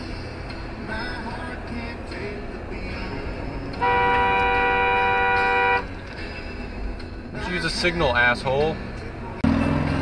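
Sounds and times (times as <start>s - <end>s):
road noise inside moving car: 0.0s - 10.0s
car horn honk: 3.7s - 6.0s.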